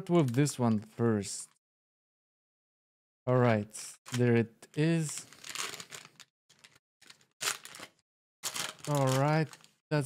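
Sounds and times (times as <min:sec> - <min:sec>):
foil pack crinkling and tearing: 0:05.0 - 0:09.8.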